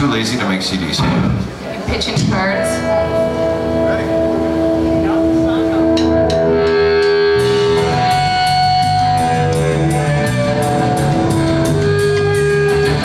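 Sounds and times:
drums and bass beat: 1.0s - 13.0s
electric guitar notes: 1.0s - 13.0s.

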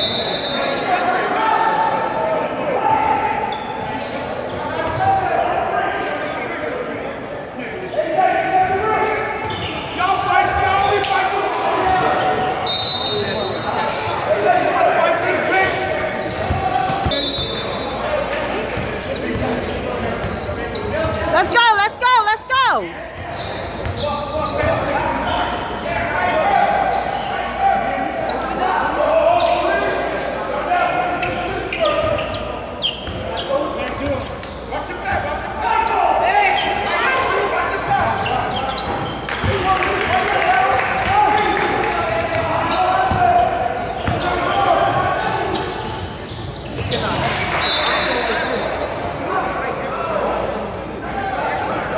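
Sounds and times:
voices in echoing gym: 0.0s - 51.9s.

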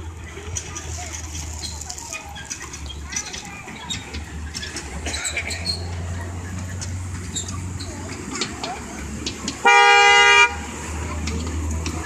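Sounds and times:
train horn blast: 9.6s - 10.6s.

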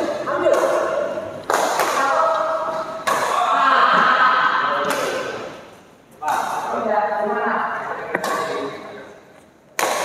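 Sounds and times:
badminton racket hitting shuttlecock: 0.4s - 3.4s, 9.8s - 10.0s.

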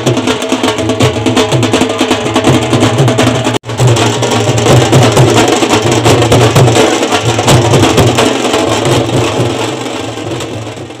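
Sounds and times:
loud music with pounding drums: 0.0s - 11.0s.

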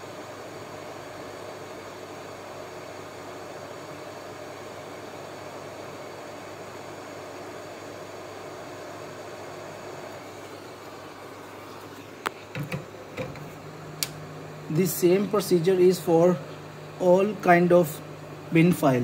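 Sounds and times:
faint hum: 0.0s - 19.0s
fan-like hiss: 0.0s - 19.0s.

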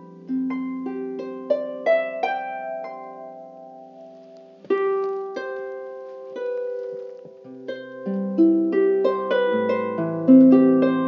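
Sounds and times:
solo harp playing: 0.0s - 11.0s.

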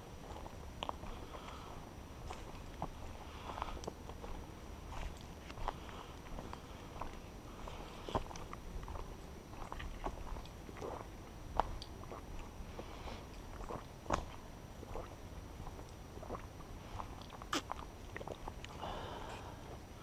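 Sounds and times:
footsteps crunching leaves and twigs: 0.0s - 19.8s.

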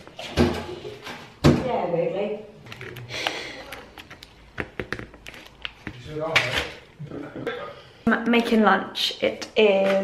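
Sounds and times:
plastic film crinkling: 2.6s - 6.2s.

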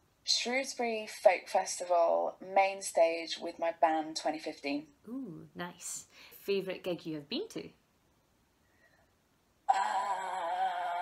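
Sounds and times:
woman holding long vocal note: 9.7s - 11.0s.

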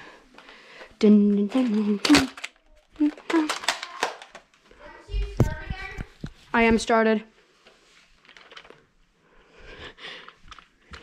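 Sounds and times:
camera handling clicks and rustles: 1.6s - 4.6s
child murmuring: 1.7s - 4.2s.

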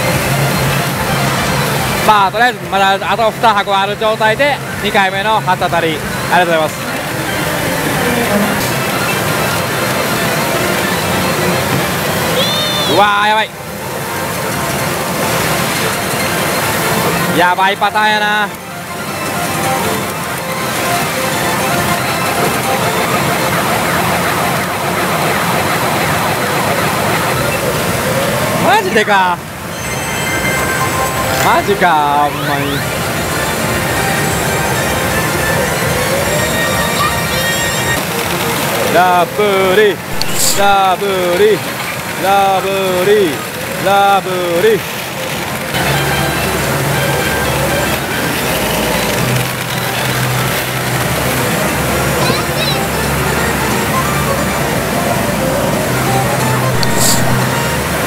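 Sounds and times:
electronic gliding tones: 0.0s - 58.0s
game machine music and effects: 0.0s - 58.0s
pachinko machines din: 0.0s - 58.0s.

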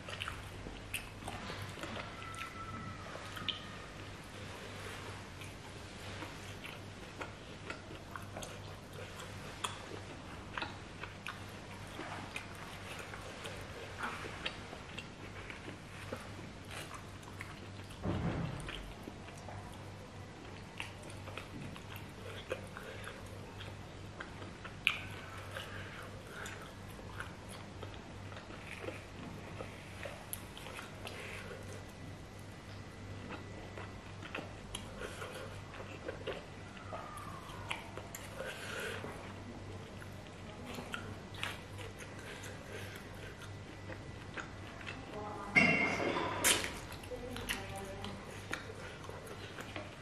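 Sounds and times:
chewing and wet mouth clicks: 0.0s - 2.7s, 3.3s - 3.7s, 5.4s - 18.0s, 18.6s - 39.0s, 39.6s - 45.2s, 46.4s - 50.0s
deep thump: 18.0s - 18.8s.

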